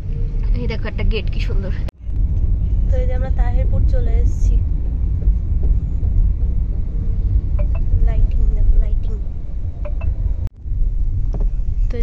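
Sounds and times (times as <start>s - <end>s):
car rumbling on road: 0.0s - 12.0s.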